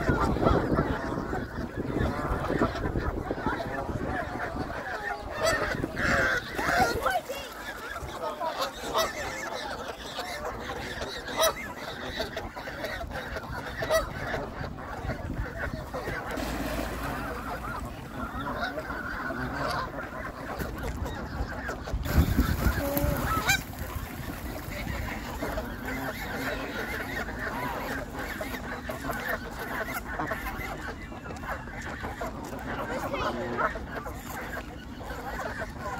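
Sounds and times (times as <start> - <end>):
geese honking: 0.1 - 35.9.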